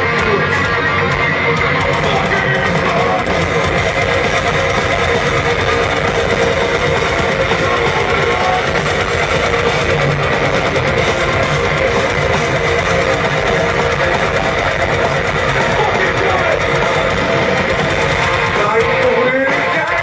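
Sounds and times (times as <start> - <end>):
heavy metal band playing live: 0.0 - 20.0.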